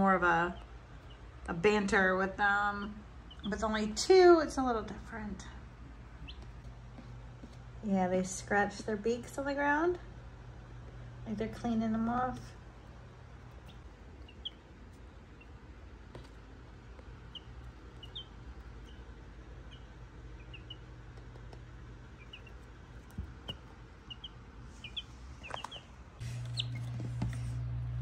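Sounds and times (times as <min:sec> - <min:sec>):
steady low hum: 0:00.0 - 0:28.0
baby chicks peeping: 0:00.2 - 0:01.9, 0:02.7 - 0:04.0, 0:04.9 - 0:06.8, 0:12.2 - 0:27.7.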